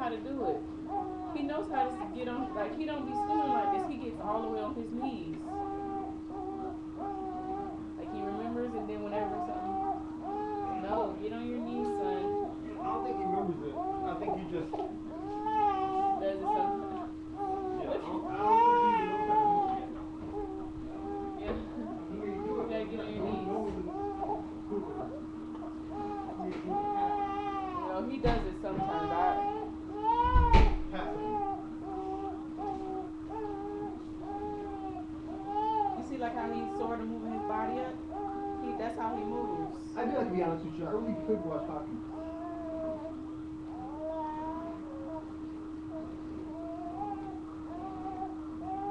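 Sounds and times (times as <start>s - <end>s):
steady hum: 0.0s - 48.9s
baby crying: 0.9s - 24.4s, 25.9s - 28.1s, 28.7s - 39.8s, 41.1s - 45.3s, 45.9s - 48.9s
baby vocalizing: 5.5s - 8.4s, 31.2s - 36.0s, 45.9s - 48.9s.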